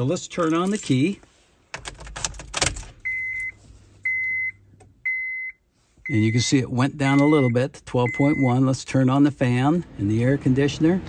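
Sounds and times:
car keys jangling: 0.1s - 3.6s
dashboard warning chime beeps: 3.0s - 8.7s.

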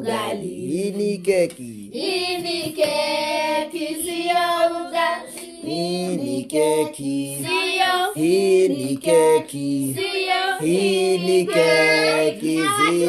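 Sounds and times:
child singing: 0.0s - 0.5s, 2.0s - 6.2s, 7.0s - 9.0s, 9.9s - 13.0s
woman singing: 7.2s - 8.3s, 10.0s - 13.0s.

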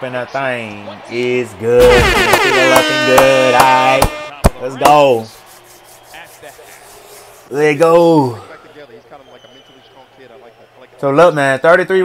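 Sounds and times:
television sports commentary: 0.0s - 12.0s.

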